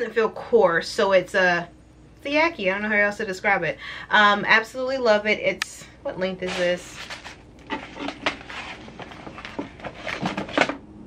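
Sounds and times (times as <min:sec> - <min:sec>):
packaging rustling and crinkling: 0:06.4 - 0:10.8.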